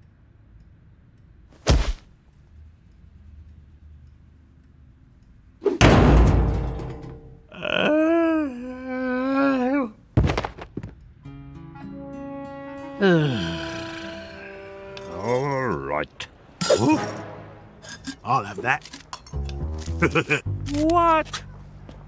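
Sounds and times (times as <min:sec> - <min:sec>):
background music: 0:11.1 - 0:22.0.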